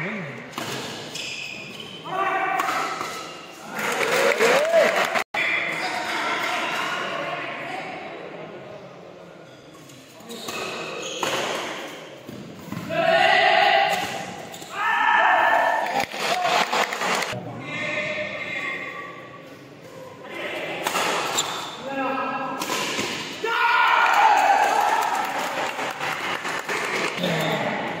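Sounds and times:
people shouting: 0:12.9 - 0:16.7, 0:23.4 - 0:25.5.

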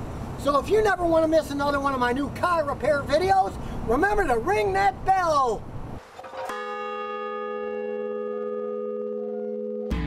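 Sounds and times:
large bell ringing: 0:06.3 - 0:10.0.

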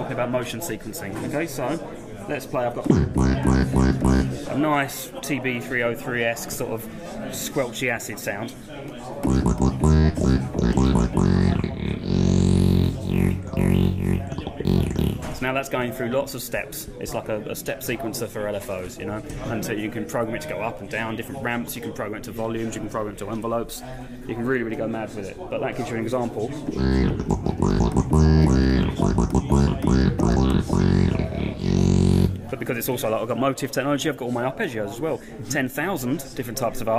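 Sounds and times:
squelchy acid synth bass line: 0:02.9 - 0:04.5, 0:09.2 - 0:15.4, 0:26.8 - 0:32.5.

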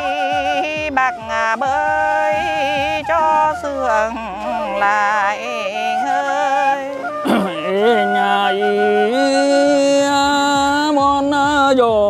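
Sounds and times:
flute playing slow folk melody: 0:00.0 - 0:11.6.

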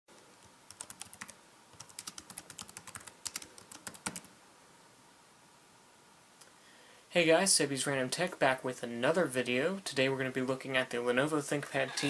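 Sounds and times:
typing on computer keyboard: 0:00.7 - 0:04.3.

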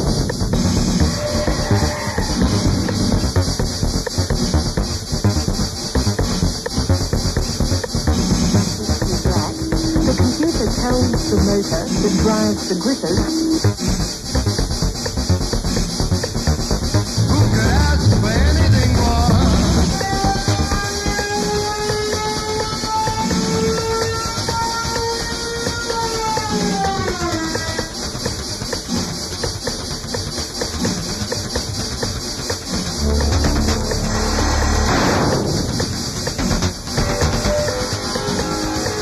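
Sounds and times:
deep bass: 0:00.0 - 0:21.2, 0:32.9 - 0:38.7
dense percussion: 0:00.0 - 0:39.0
electronic music: 0:00.0 - 0:39.0
noise swell: 0:07.5 - 0:15.0, 0:16.4 - 0:21.0.

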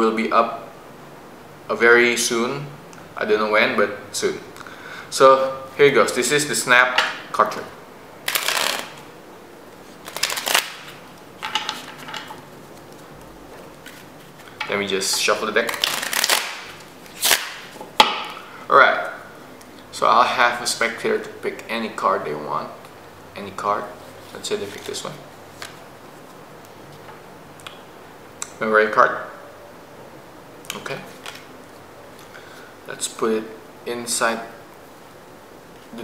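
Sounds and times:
playing cards being shuffled: 0:08.3 - 0:09.1, 0:09.9 - 0:17.8, 0:24.2 - 0:26.4, 0:31.0 - 0:31.5.

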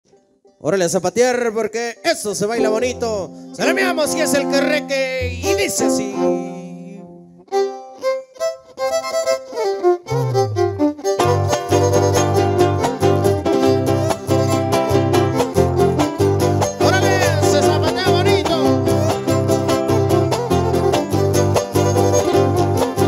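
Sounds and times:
strummed guitars: 0:02.0 - 0:23.0
violin melody: 0:02.2 - 0:23.0
low bass notes: 0:02.4 - 0:07.2, 0:10.1 - 0:23.0.

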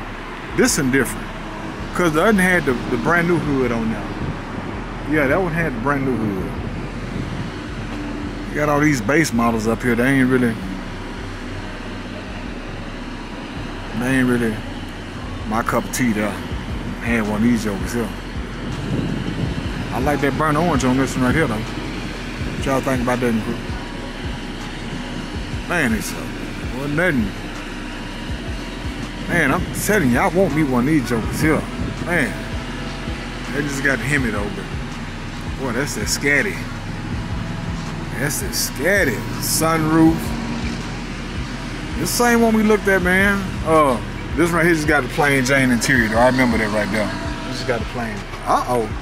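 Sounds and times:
low motor hum: 0:00.0 - 0:49.0
road traffic rumble: 0:00.0 - 0:49.0.

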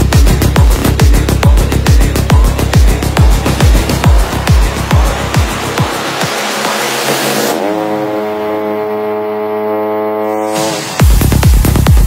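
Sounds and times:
deep kick-drum beat: 0:00.0 - 0:06.9, 0:11.0 - 0:12.0
rushing noise: 0:00.0 - 0:08.2, 0:10.2 - 0:11.9
electronic dance music: 0:00.0 - 0:12.0.

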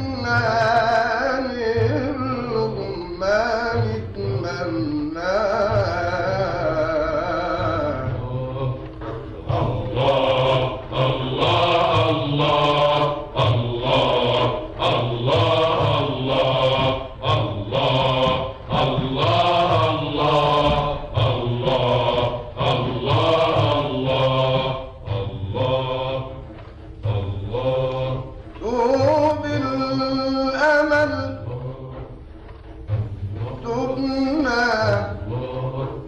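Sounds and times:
man chanting unaccompanied: 0:00.0 - 0:08.9.

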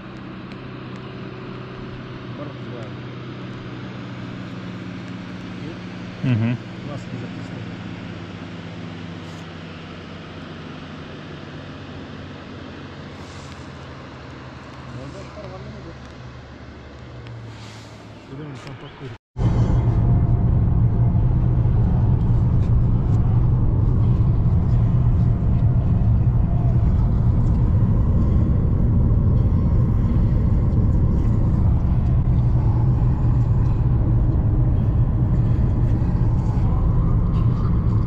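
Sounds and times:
car interior road rumble: 0:13.1 - 0:38.0.

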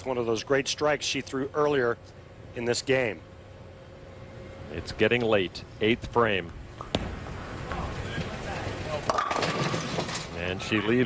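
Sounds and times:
crowd voices: 0:07.4 - 0:11.0
bowling pins clattering: 0:09.0 - 0:10.3.

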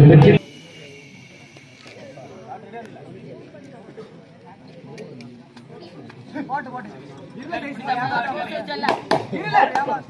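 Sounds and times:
overlapping voices calling out: 0:00.0 - 0:00.4.

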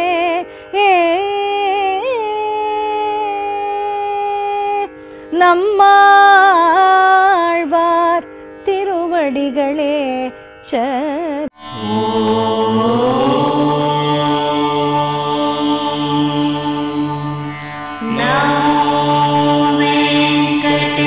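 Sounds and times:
chant-like music of held tones: 0:11.6 - 0:21.0
person singing wavering line: 0:11.6 - 0:21.0.

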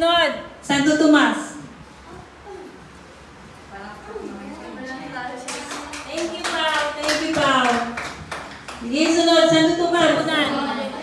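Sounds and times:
girls clapping: 0:05.4 - 0:09.5.

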